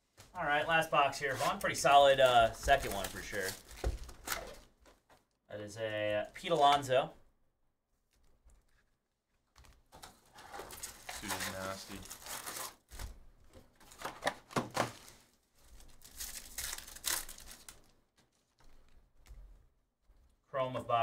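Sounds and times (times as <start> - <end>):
wrappers ripping and crinkling: 1.2 - 4.8, 9.7 - 13.2, 13.8 - 19.0.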